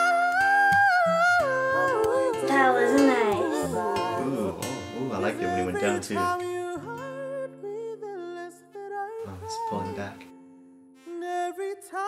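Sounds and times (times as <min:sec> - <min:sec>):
man singing a pop ballad: 0:00.0 - 0:10.2, 0:11.2 - 0:12.0
acoustic guitar: 0:00.0 - 0:12.0.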